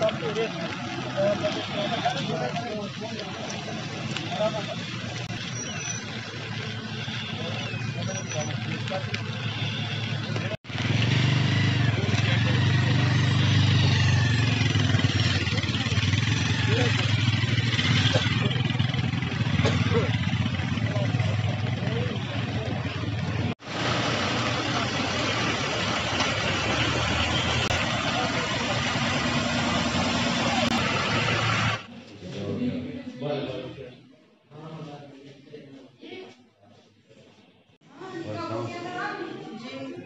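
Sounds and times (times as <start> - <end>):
traffic passing on wet road: 0.0 - 31.9
vehicle engine running: 0.0 - 31.9.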